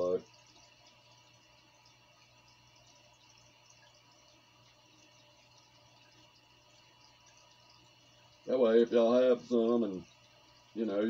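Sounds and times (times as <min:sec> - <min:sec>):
aquarium hum: 0:00.0 - 0:11.0
water trickling: 0:00.0 - 0:11.0.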